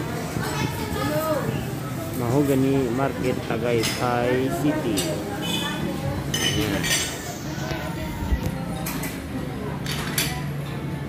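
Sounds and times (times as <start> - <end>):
dishes and cutlery clinking: 3.5 - 7.9, 8.5 - 10.8.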